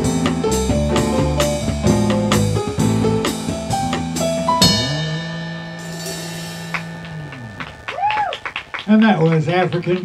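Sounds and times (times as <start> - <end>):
digital piano chord sustaining: 0.0 - 9.8
held electric bass note: 0.0 - 9.9
cymbal wash: 4.5 - 9.8.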